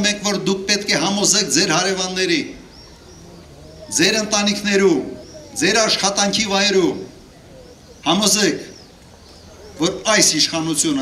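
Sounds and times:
man speaking into a microphone: 0:00.0 - 0:02.6, 0:03.8 - 0:07.1, 0:09.8 - 0:11.0.

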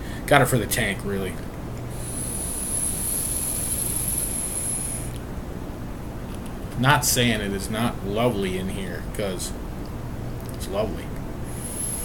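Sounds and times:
electronic cigarette hissing: 0:01.9 - 0:05.2, 0:11.4 - 0:12.0.

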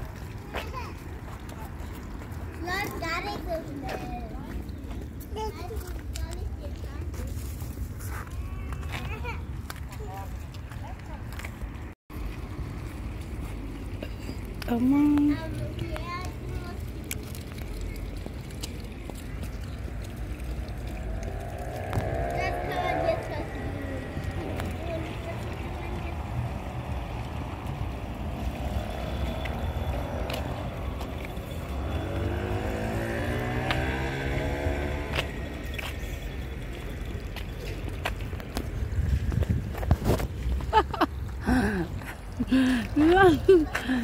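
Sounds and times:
vehicles passing: 0:00.0 - 0:44.0
low rumble: 0:18.8 - 0:31.4.

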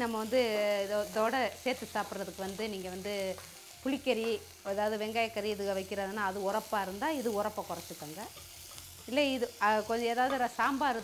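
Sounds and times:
onions sizzling in oil: 0:00.0 - 0:11.0
woman speaking: 0:09.1 - 0:11.0.

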